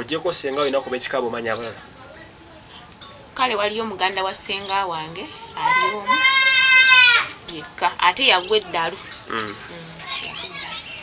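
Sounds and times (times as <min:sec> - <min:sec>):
faint voices of children playing: 0:00.0 - 0:03.8, 0:04.5 - 0:11.0.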